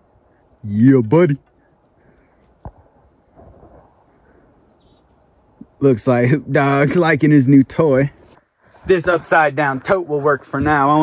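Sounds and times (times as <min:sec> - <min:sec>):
faint outdoor ambience: 0:00.0 - 0:11.0
soft rustle: 0:01.4 - 0:05.6.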